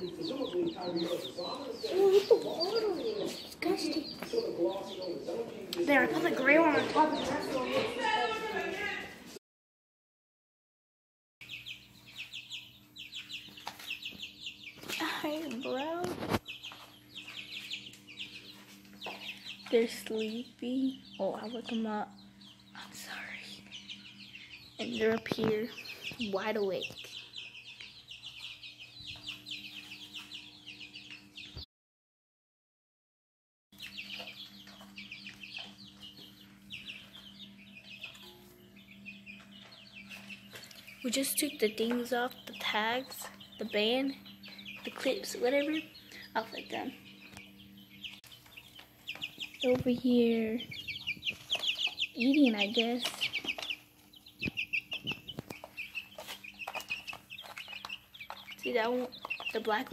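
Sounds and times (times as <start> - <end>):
chicks pecking plastic tray: 0.0 - 9.2, 11.5 - 22.6, 23.7 - 31.5, 33.8 - 59.9
chicks peeping: 0.0 - 9.4, 11.4 - 31.7, 33.8 - 59.9
faint steady hum: 11.4 - 31.2.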